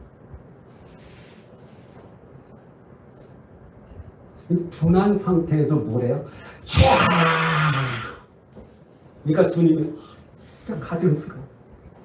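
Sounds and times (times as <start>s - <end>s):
man's raspy drawn-out vocal: 6.7s - 8.2s.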